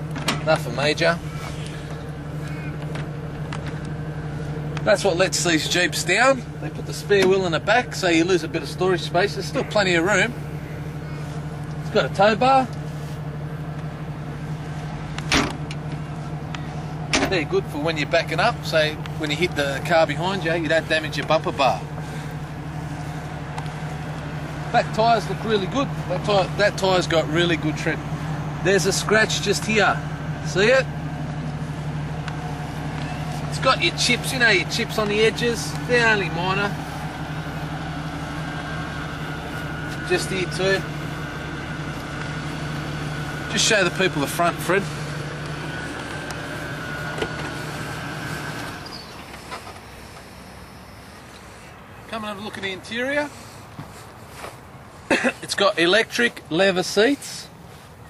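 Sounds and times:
car tailgate shutting: 0:00.0 - 0:00.7, 0:15.2 - 0:16.0, 0:17.1 - 0:17.4
steady low hum: 0:00.0 - 0:55.5.

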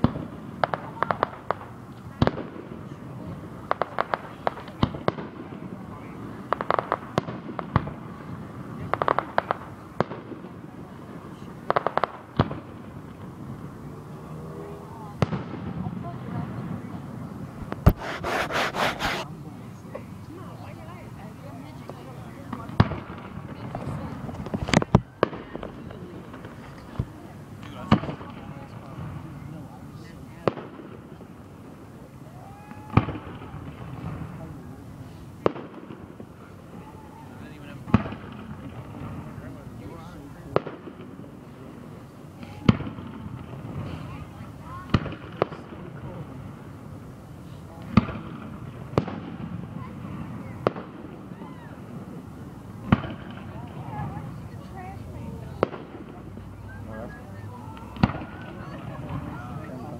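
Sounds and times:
murmur of crowd: 0:00.0 - 0:59.9.

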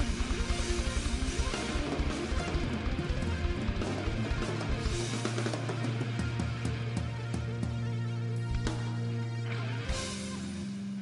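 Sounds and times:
electric guitar: 0:00.0 - 0:11.0
rock band playing: 0:00.0 - 0:11.0.

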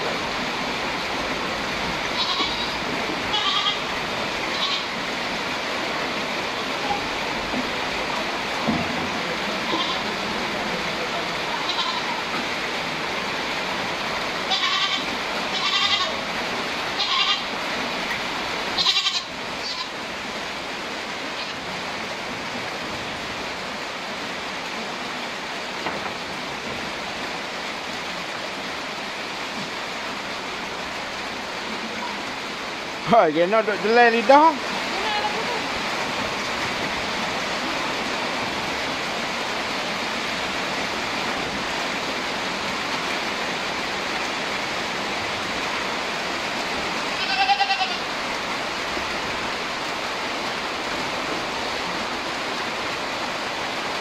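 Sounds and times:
goats bleating: 0:02.1 - 0:03.9, 0:04.5 - 0:04.9, 0:09.6 - 0:10.2, 0:11.5 - 0:12.3, 0:14.5 - 0:16.2, 0:17.0 - 0:17.5, 0:18.8 - 0:20.0, 0:34.8 - 0:35.7, 0:47.1 - 0:48.1.

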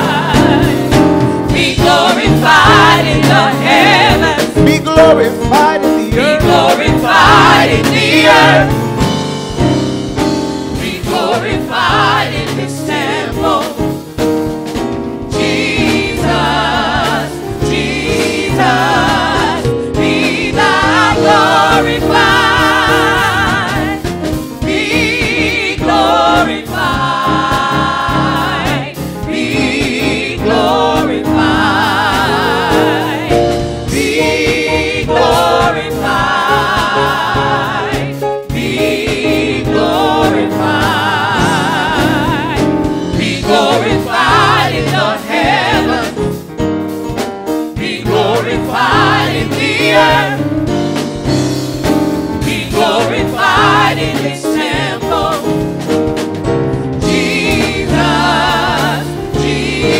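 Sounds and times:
choir singing in harmony: 0:00.0 - 0:46.8, 0:47.6 - 0:59.9.

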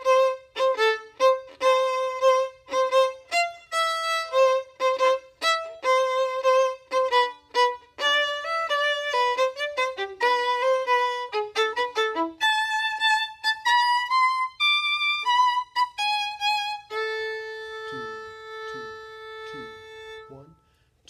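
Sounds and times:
violin playing bowed notes: 0:00.0 - 0:20.8.

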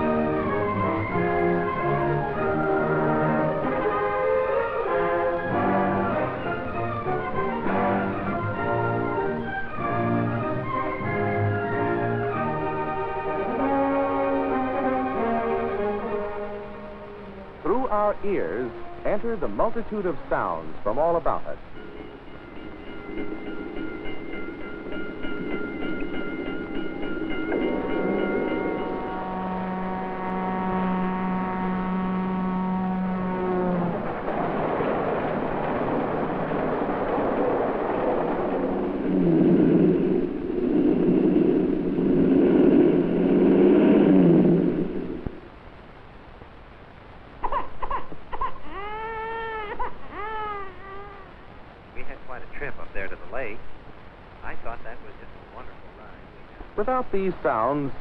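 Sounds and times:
train whistle: 0:00.0 - 0:16.6, 0:27.3 - 0:34.3
steady held tones: 0:00.0 - 0:48.4
train rushing past: 0:17.7 - 0:45.4
baby crying: 0:47.4 - 0:51.4.

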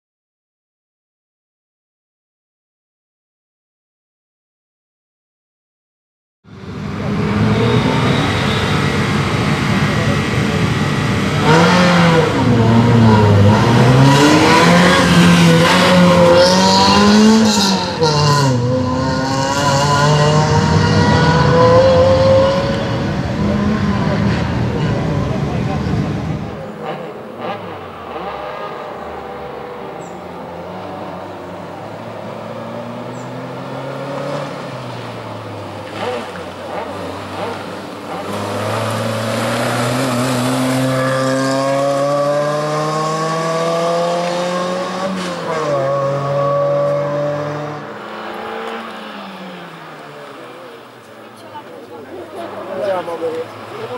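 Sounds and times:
car engine revving: 0:06.5 - 0:53.9.

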